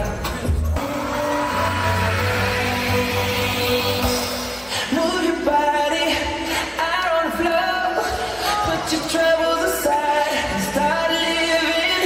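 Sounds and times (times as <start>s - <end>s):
dance show music over loudspeakers: 0.0s - 12.0s.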